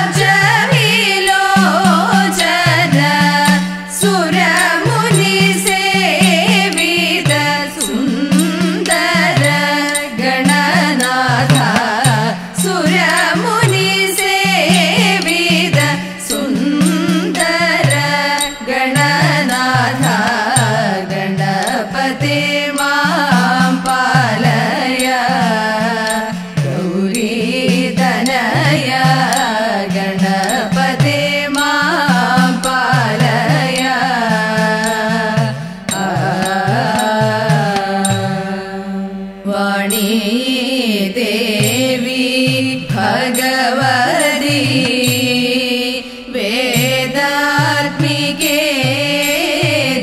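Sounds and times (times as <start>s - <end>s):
hand drum with bending pitch: 0.0s - 38.8s, 41.2s - 50.0s
percussion beat: 0.0s - 50.0s
women singing: 0.0s - 50.0s.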